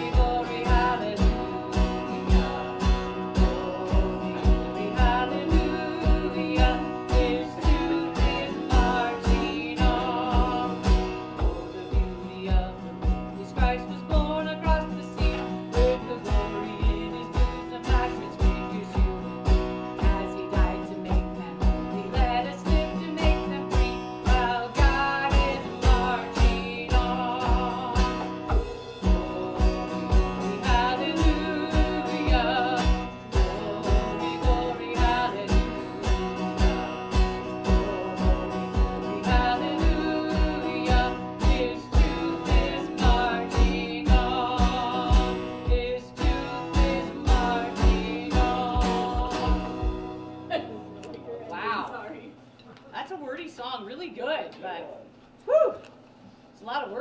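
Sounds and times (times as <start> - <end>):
person singing: 0.0 - 50.2
steady beat: 0.0 - 50.2
strummed acoustic guitar: 0.0 - 51.8.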